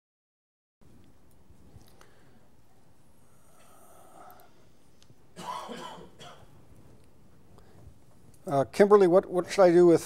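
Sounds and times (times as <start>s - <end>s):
person coughing: 5.4s - 6.5s.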